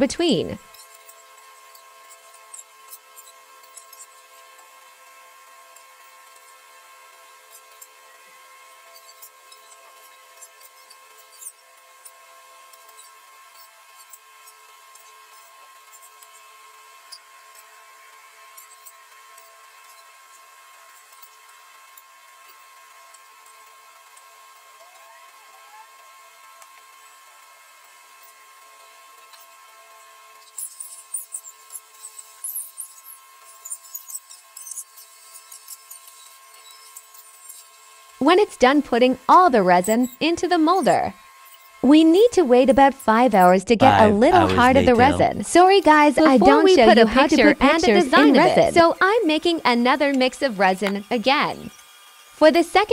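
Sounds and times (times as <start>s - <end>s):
faint steady hum: 38.2s - 41.2s, 41.8s - 51.7s.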